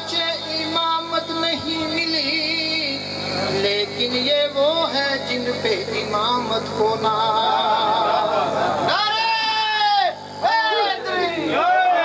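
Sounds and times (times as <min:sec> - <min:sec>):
man chanting: 0:00.0 - 0:08.0.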